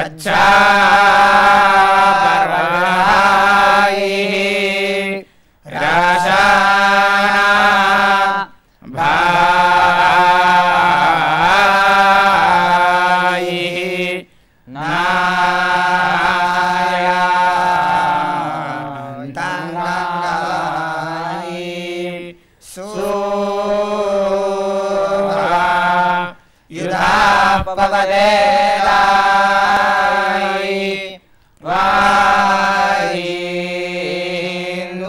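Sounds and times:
young men chanting in unison: 0.0 - 35.0.

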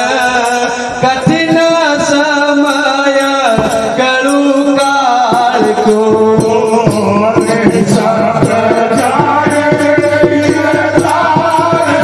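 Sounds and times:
jingling percussion: 0.0 - 12.0
quick drum beat: 5.3 - 12.0.

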